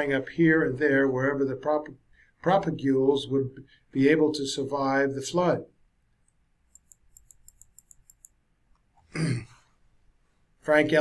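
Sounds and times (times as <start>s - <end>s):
mouse scroll wheel clicking: 6.7s - 8.4s.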